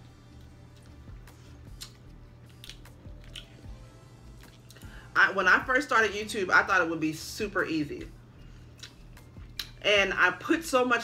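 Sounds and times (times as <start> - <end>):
chewing: 0.3 - 4.8, 8.7 - 9.8
crab shell cracking: 1.8 - 3.6.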